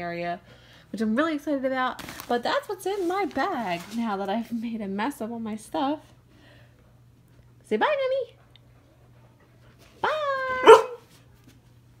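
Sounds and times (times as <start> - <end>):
dog barking sharply: 10.6 - 11.0.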